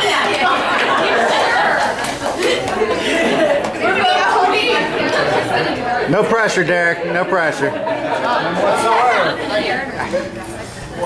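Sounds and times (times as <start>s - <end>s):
murmur of guests chatter: 0.0s - 11.0s.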